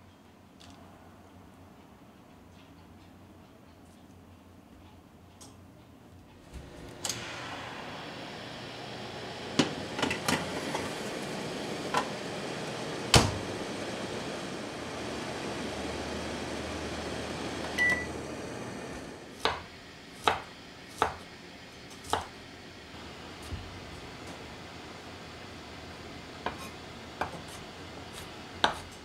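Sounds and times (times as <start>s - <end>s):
oven door shutting: 6.4s - 19.1s.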